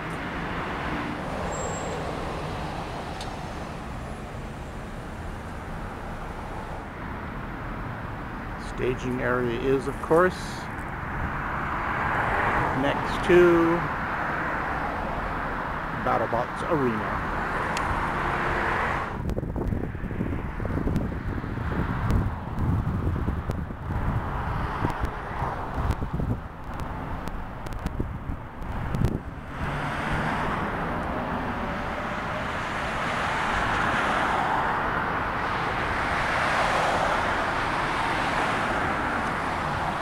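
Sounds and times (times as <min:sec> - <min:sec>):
road traffic passing: 0:00.0 - 0:40.0
wind buffeting microphone: 0:17.6 - 0:32.0.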